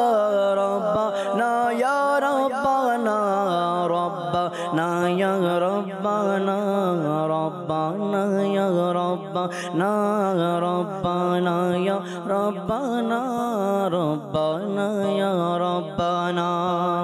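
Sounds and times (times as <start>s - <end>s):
man singing into a microphone: 0.0s - 17.0s.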